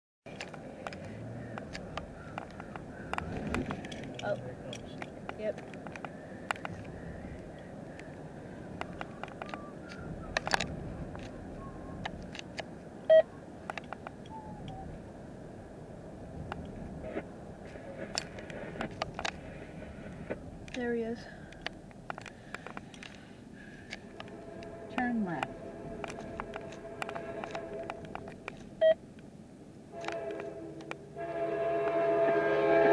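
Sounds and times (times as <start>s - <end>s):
sharp clicks: 0.3s - 11.4s, 12.0s - 14.8s, 20.3s - 29.3s, 30.0s - 31.0s
car engine and road noise: 0.3s - 31.3s.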